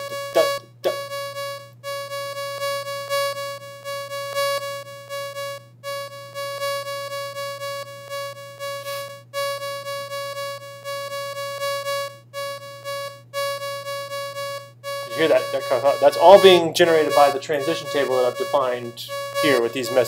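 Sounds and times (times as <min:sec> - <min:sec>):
repeated synthesized note: 0:15.1 - 0:20.0.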